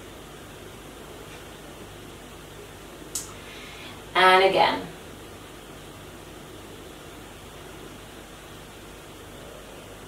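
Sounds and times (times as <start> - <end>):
low room tone hiss: 0.0 - 10.0.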